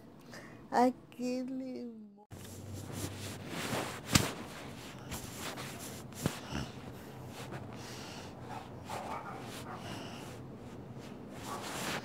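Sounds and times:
handling noise rustling: 2.4s - 7.8s.

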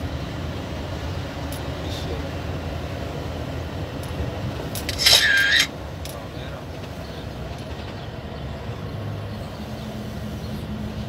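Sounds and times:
engine and road rumble: 0.0s - 11.0s
loud high-pitched hiss: 4.9s - 5.7s.

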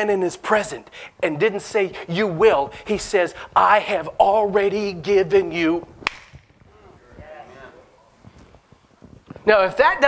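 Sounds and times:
hand clap with room echo: 6.0s - 6.5s.

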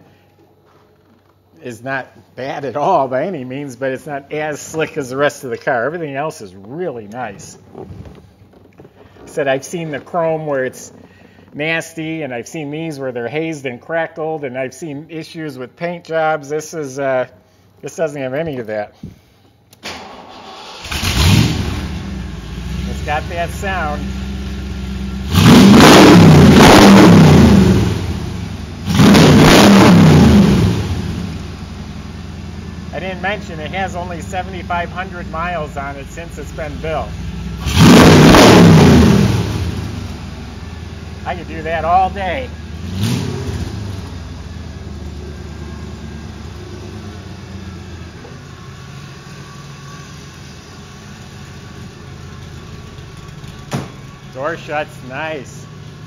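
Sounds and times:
car engine idling and revving: 20.4s - 56.0s
car door shutting: 53.6s - 54.1s.

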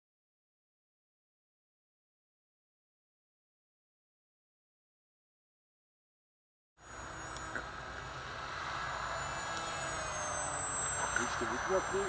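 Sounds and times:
model plane propeller whir: 6.8s - 12.0s.

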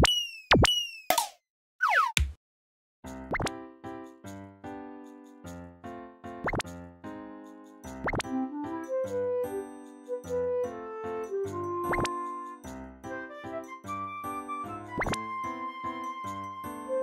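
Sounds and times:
cheerful children's music: 3.1s - 17.0s.

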